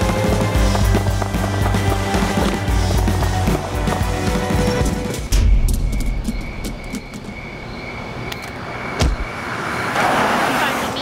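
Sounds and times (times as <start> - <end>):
steady high tone: 5.2 - 9.8.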